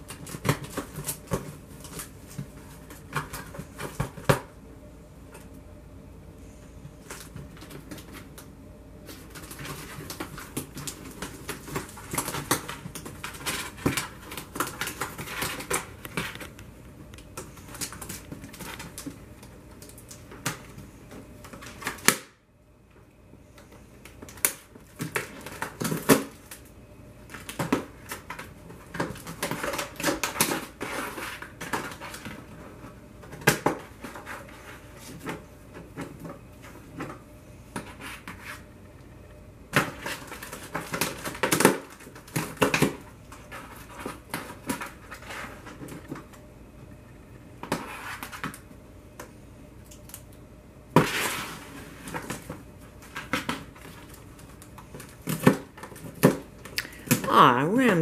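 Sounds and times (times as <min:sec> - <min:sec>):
cats scratching cardboard: 0:00.0 - 0:04.5, 0:06.7 - 0:22.3, 0:23.5 - 0:26.7, 0:27.3 - 0:38.7, 0:39.7 - 0:46.4, 0:47.6 - 0:48.7, 0:50.9 - 0:57.3.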